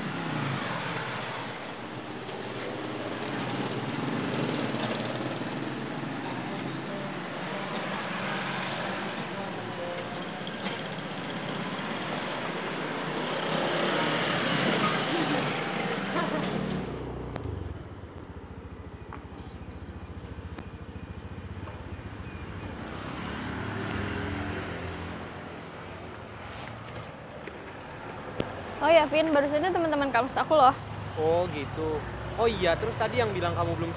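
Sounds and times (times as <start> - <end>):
vehicle passing: 0.0 - 18.0, 22.8 - 27.0
motorcycles passing: 0.0 - 33.9
scooter engine running slowly: 15.0 - 22.8.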